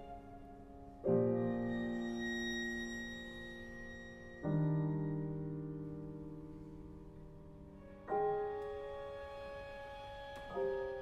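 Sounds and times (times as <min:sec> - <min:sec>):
piano trio chamber music: 0:00.0 - 0:11.0.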